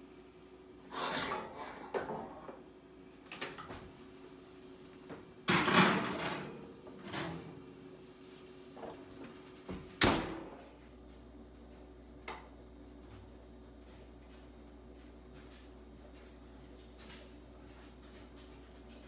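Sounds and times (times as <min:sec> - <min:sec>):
oven door scraping open: 0:00.9 - 0:02.6, 0:05.6 - 0:07.6.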